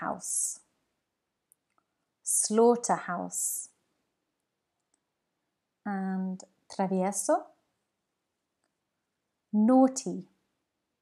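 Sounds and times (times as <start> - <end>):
woman's voice: 0.0 - 0.7, 2.3 - 3.8, 5.9 - 7.6, 9.6 - 10.4.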